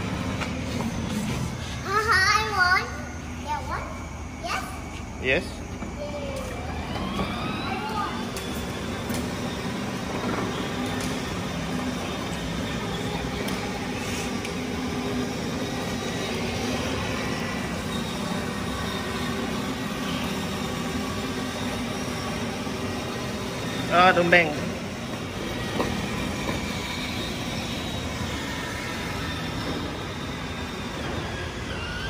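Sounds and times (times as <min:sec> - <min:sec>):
electric motor whir: 0:04.9 - 0:32.0
plastic wheels rolling on concrete: 0:04.9 - 0:32.0.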